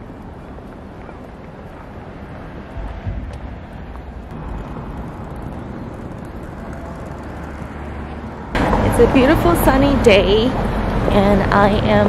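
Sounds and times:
traffic rumble: 0.0s - 12.0s
wind on microphone: 0.0s - 12.0s.

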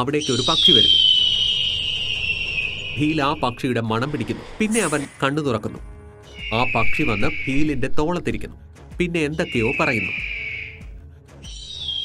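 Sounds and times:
high whistle-like music note: 0.2s - 3.8s, 6.3s - 7.9s, 9.3s - 10.9s.

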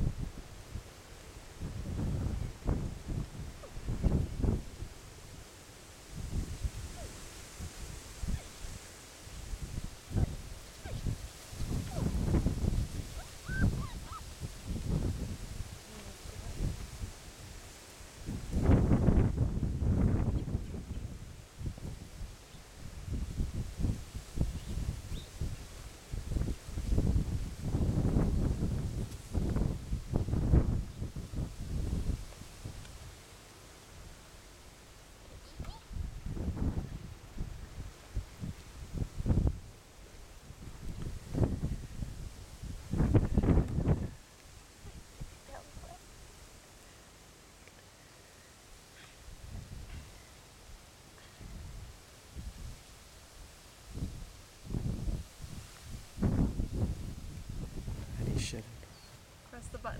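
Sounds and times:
wind buffeting microphone: 0.0s - 0.8s, 1.4s - 5.4s, 6.1s - 17.6s, 18.2s - 33.0s, 35.5s - 39.8s, 40.5s - 44.2s, 53.9s - 58.7s.

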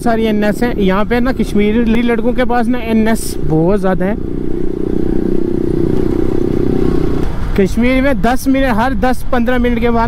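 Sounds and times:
motorcycle engine cruising: 0.0s - 10.0s
wind and road noise: 0.0s - 10.0s.

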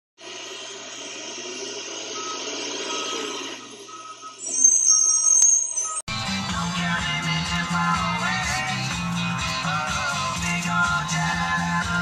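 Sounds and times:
refuse truck running: 0.2s - 4.4s, 6.1s - 12.0s
loud high-pitched squeal: 0.2s - 6.0s
short high beeps: 2.2s - 6.1s.

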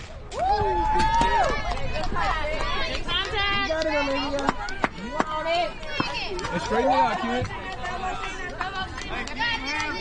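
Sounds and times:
people yelling and cheering: 0.0s - 10.0s.

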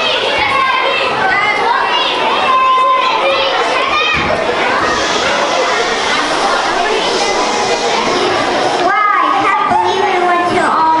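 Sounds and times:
children's voices overlapping: 0.0s - 11.0s.

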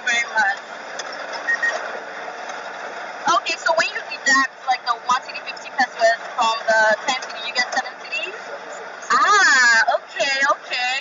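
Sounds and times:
vehicle and street traffic noise: 0.0s - 11.0s
high beep tone: 1.5s - 1.8s.

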